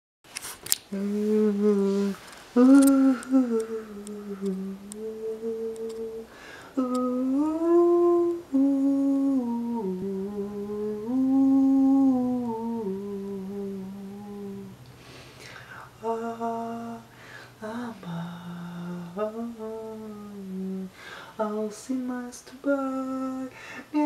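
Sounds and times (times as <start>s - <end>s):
man humming: 0.9s - 14.8s
faint clicks: 2.2s - 8.4s.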